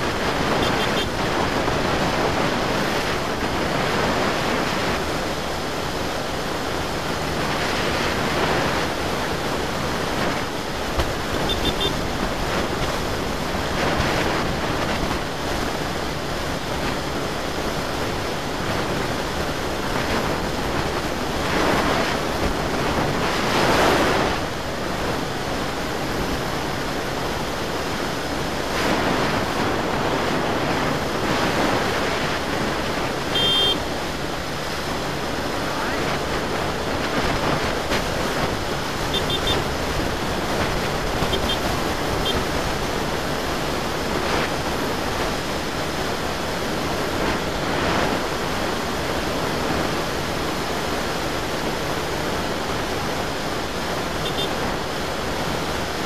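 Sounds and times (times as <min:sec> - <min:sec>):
wind rushing over microphone: 0:00.0 - 0:56.0
short high beeps: 0:11.5 - 0:12.0, 0:33.3 - 0:33.8.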